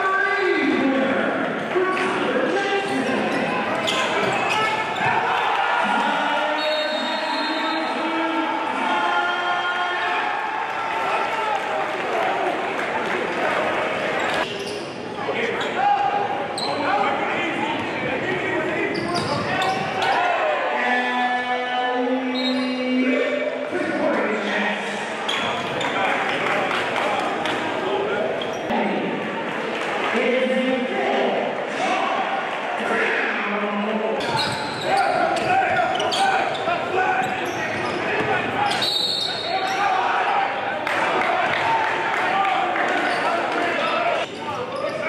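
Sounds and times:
overlapping crowd and player voices: 3.5 - 6.6, 7.9 - 18.9, 24.9 - 33.4, 39.4 - 45.0.

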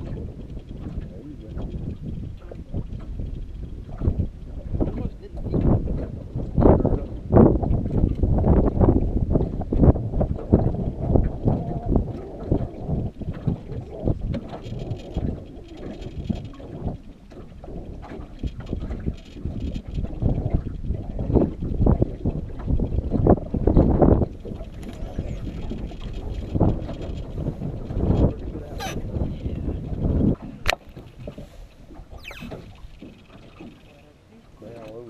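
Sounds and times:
water lapping against boat: 0.0 - 35.0
wind buffeting microphone: 0.0 - 35.0.

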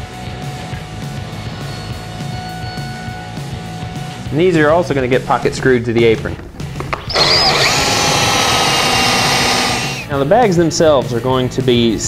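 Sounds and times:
drill whining through plywood: 6.9 - 10.1.

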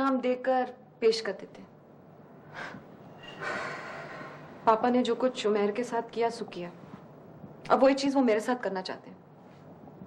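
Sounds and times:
woman breathing: 2.4 - 4.6.

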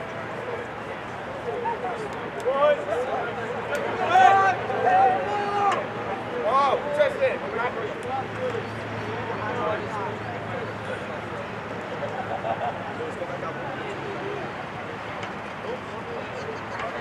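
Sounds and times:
voices shouting and calling out: 0.0 - 17.0.

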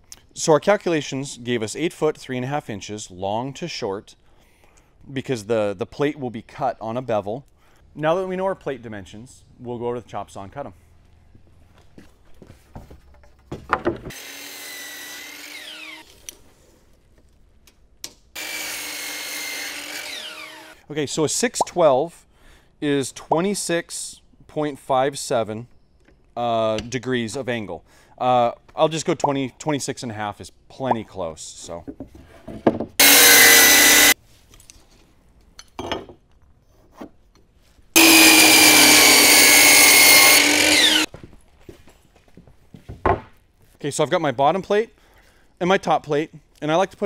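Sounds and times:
miter saw cutting lumber: 14.1 - 16.1, 18.4 - 20.8, 33.0 - 34.2, 38.0 - 41.1
saw motor winding down: 14.1 - 16.1, 18.4 - 20.8, 33.0 - 34.2, 38.0 - 41.1.

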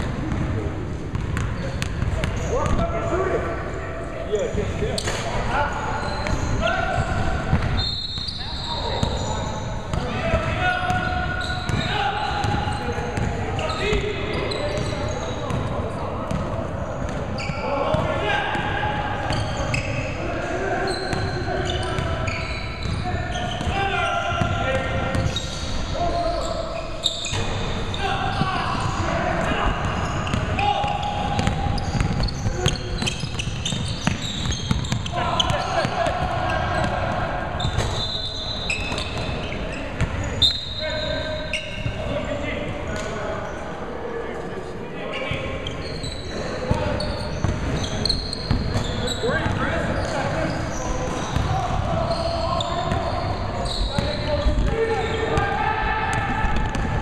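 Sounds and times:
players calling out: 1.6 - 43.6, 45.1 - 57.0.

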